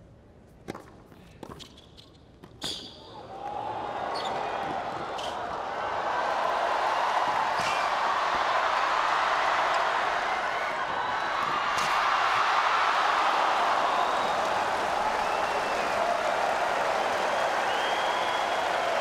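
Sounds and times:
stadium crowd noise: 3.0s - 19.0s.

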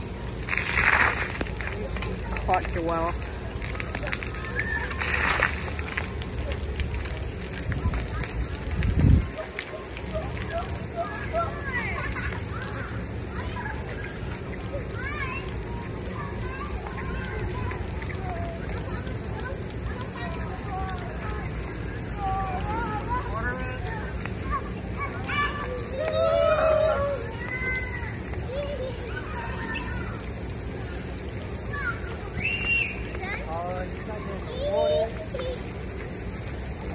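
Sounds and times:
water jets spraying on concrete: 0.0s - 36.9s.

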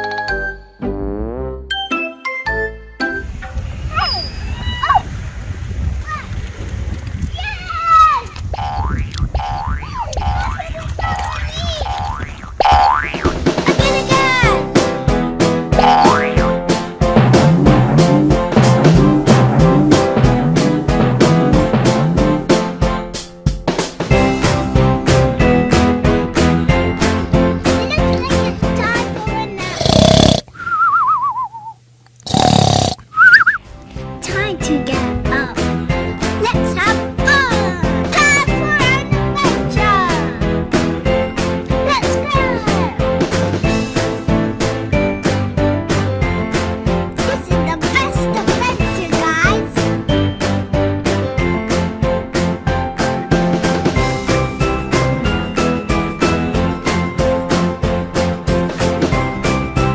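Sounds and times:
cartoon boing sound effects: 8.6s - 10.6s, 11.2s - 13.4s, 15.8s - 16.5s
cartoon snoring: 29.6s - 30.5s, 32.2s - 33.0s
wavering whistle: 30.5s - 31.8s, 33.1s - 33.6s.

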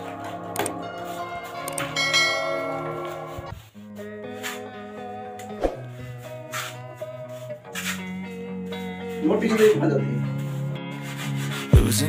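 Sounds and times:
background music with sustained tones: 0.0s - 12.0s.

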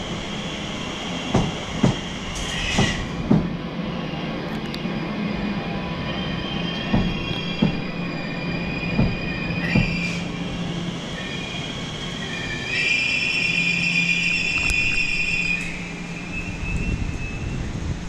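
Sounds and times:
train high-pitched squeal: 0.0s - 3.2s, 4.9s - 18.0s.

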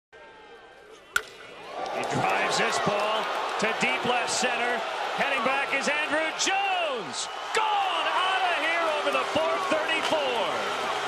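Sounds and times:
baseball bat cracking ball: 1.0s - 2.4s.

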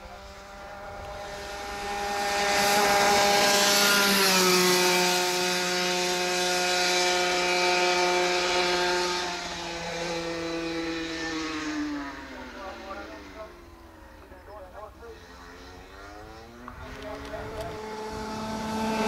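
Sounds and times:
kart engine running at high revs: 0.0s - 14.3s, 15.1s - 19.0s.

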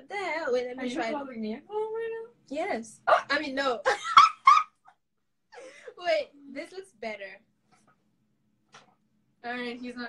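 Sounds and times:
woman laughing: 3.8s - 5.9s.

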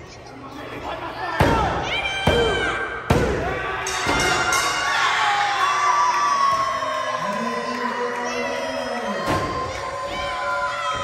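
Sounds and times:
crowd cheering and shouting: 0.9s - 11.0s.

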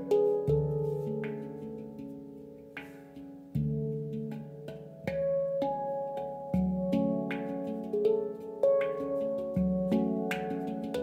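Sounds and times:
handpan melody: 0.0s - 11.0s.

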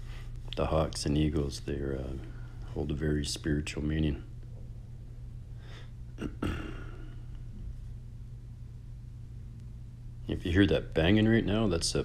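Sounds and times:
steady low hum: 0.0s - 12.0s
man's breathy throat noise: 5.6s - 7.4s.

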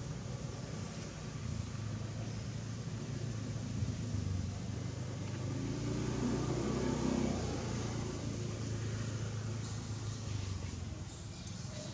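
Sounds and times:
low engine rumble: 0.0s - 11.9s.

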